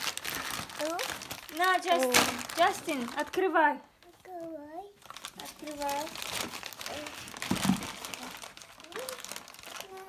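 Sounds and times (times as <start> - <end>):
foil wrapping crumpling: 0.0 - 3.5, 5.0 - 10.0.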